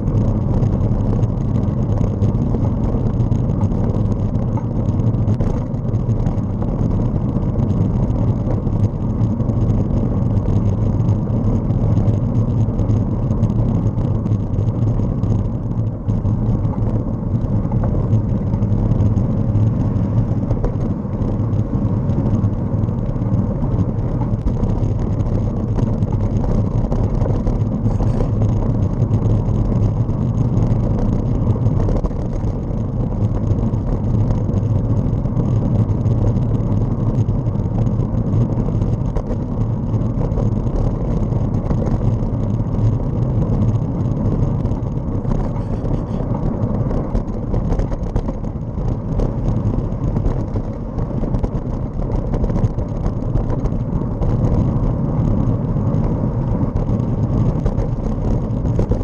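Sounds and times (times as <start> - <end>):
vehicle road and wind noise: 0.0 - 59.0.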